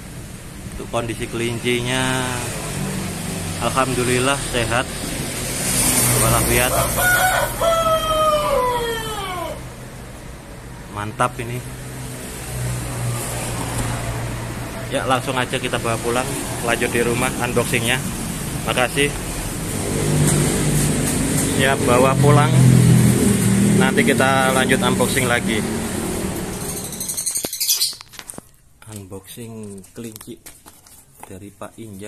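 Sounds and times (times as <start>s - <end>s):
background traffic noise: 0.0s - 32.0s
small birds chirping: 26.5s - 28.2s.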